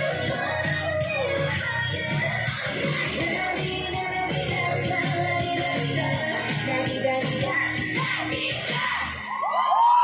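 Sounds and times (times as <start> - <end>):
dance pop track: 0.0 - 10.0
crowd cheering and whooping: 8.8 - 10.0.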